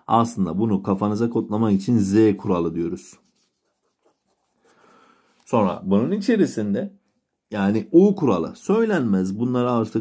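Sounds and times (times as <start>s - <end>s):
marker strokes on paper: 2.4s - 5.6s.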